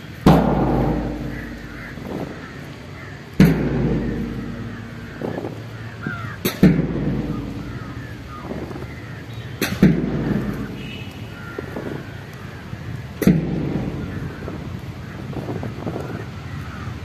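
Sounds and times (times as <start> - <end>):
crows cawing faintly: 0.0 - 17.0
big drum beats: 0.2 - 2.7, 3.3 - 10.8, 13.2 - 16.2.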